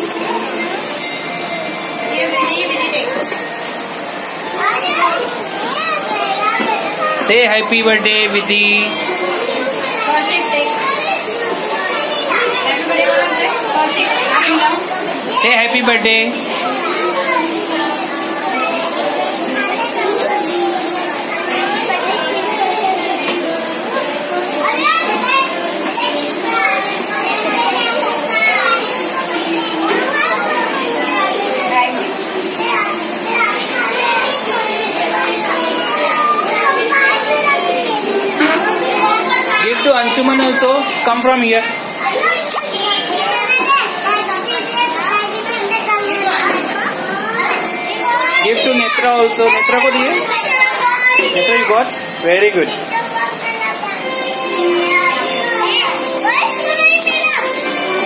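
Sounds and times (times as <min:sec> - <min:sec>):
young children chattering: 0:00.0 - 0:58.0.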